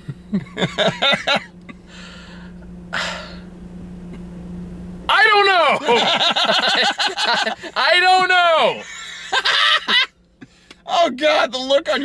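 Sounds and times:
car cabin hum: 0.0 - 12.0
breathy exhale: 1.9 - 3.5.

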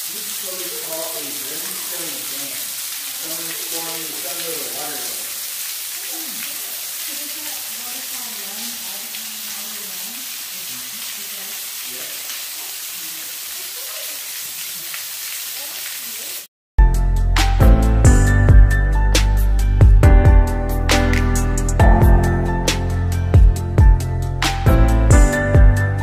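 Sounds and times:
water dripping in cave: 0.0 - 16.4
music: 16.8 - 26.0.

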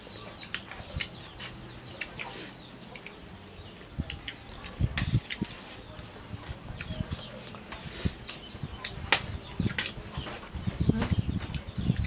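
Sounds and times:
people chewing food: 0.0 - 12.0.

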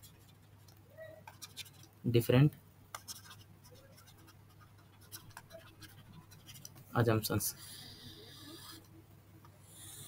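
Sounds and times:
stylus scratching on tablet: 0.0 - 0.7, 1.3 - 2.0, 3.0 - 9.0.

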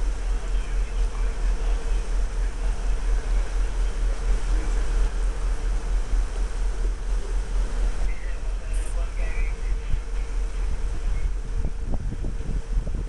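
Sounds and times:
faint steady hum: 0.0 - 13.0
wind buffeting microphone: 0.0 - 13.0.

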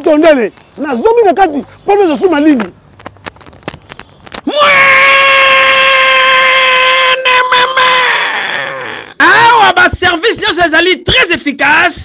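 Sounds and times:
man yelling: 4.5 - 12.0.

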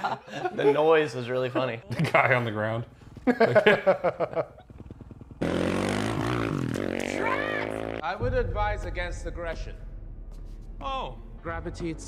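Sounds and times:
dirt bike engine running: 2.9 - 8.0.

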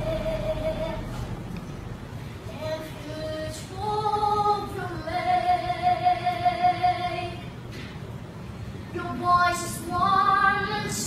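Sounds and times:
boy singing: 9.0 - 11.0.

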